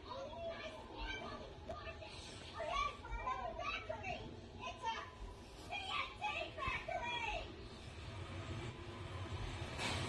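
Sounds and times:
child-like voices chattering: 0.0s - 7.6s.

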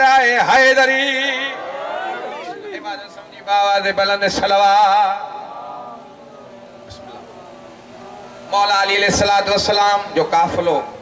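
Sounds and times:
man chanting over loudspeaker: 0.0s - 1.5s, 2.7s - 11.0s.

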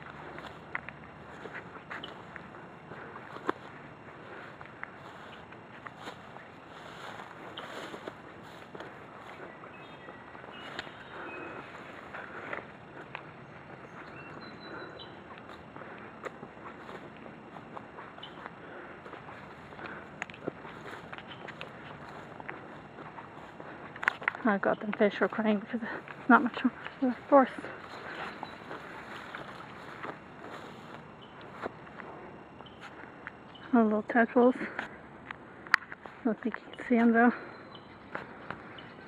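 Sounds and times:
footsteps on trail: 0.0s - 39.0s
grass and brush rustling: 0.0s - 39.0s.

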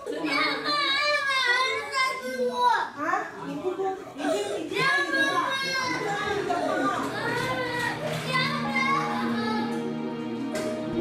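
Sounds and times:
soft music: 5.9s - 11.0s.

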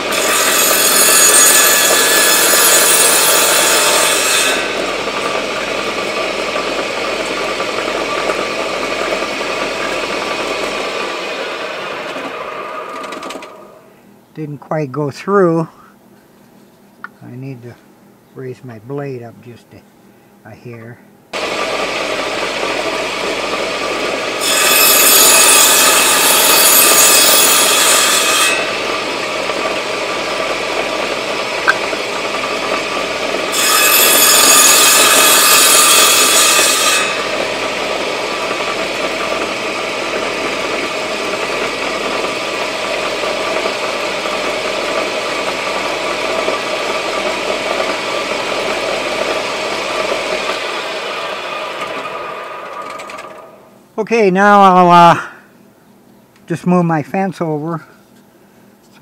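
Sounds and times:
saw blade cutting wood: 0.0s - 13.8s, 21.4s - 53.6s
saw motor winding down: 0.0s - 13.9s, 21.4s - 53.7s
table saw running: 0.0s - 13.9s, 21.3s - 53.7s.

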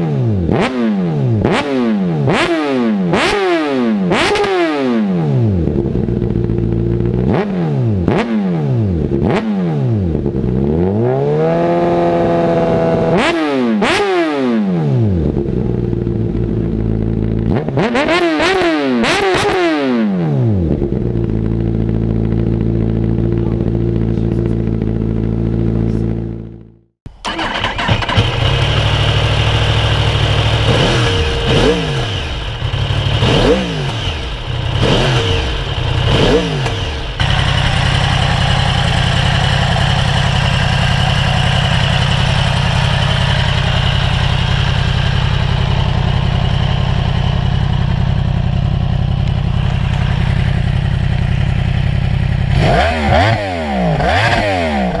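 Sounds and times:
motorcycle engine idling and revving: 0.0s - 55.0s.

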